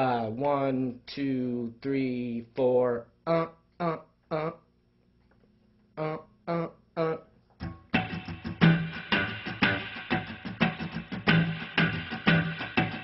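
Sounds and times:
person singing count-in: 0.0s - 4.7s, 6.0s - 7.3s
electric guitar funk strumming: 7.6s - 13.0s.

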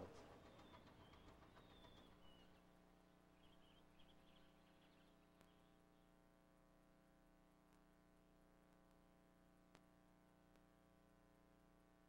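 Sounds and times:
faint steady hum: 2.2s - 12.0s
faint bird chirps: 3.4s - 6.1s.

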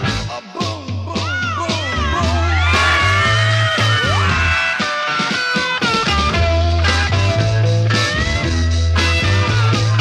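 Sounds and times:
rock band recording: 0.0s - 10.0s.

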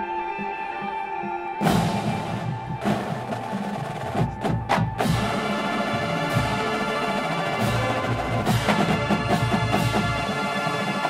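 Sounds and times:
drum beat: 1.6s - 11.0s
marching band playing a chord: 1.6s - 11.0s.

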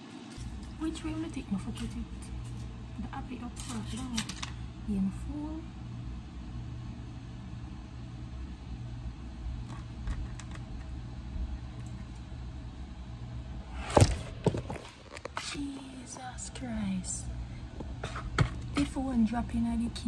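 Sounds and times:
low appliance hum: 0.0s - 20.0s.

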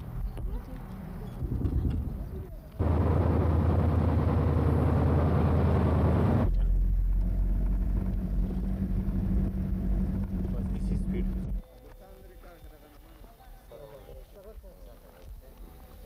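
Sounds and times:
vehicle engine rumbling: 0.0s - 11.6s.

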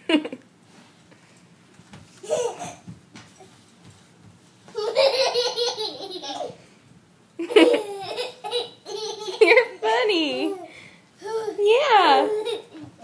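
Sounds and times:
baby laughing: 4.8s - 6.6s, 7.4s - 9.8s, 10.4s - 13.0s.

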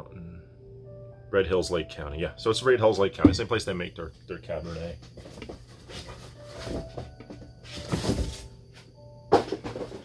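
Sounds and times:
cardboard box rustling: 5.2s - 8.5s.

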